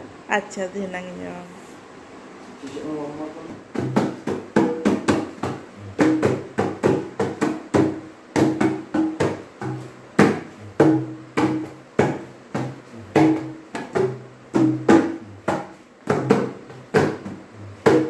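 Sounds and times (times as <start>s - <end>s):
hand drum rhythm: 3.5s - 18.0s.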